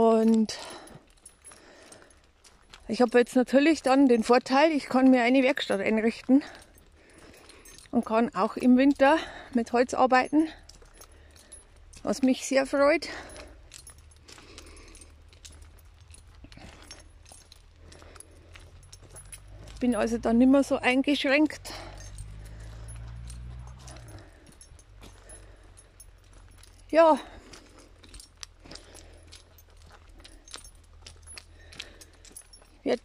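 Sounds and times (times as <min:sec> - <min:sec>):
dog leash jingling: 0:00.0 - 0:33.0.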